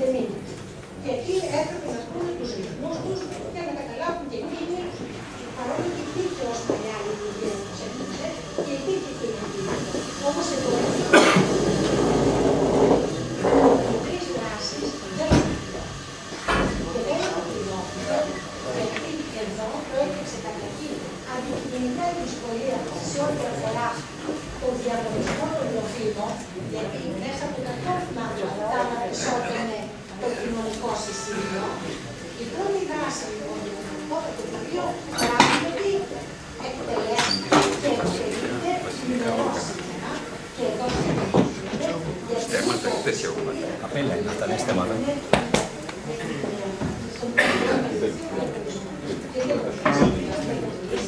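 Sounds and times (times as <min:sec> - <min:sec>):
indistinct talk: 0:00.0 - 0:51.0
murmur of voices: 0:00.0 - 0:51.0.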